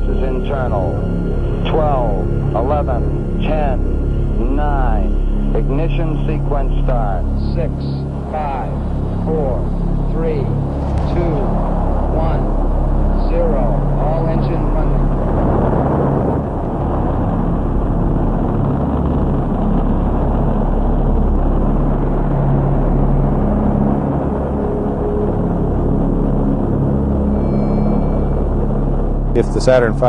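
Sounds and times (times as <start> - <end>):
deep rumble of rocket engines: 0.0 - 30.0.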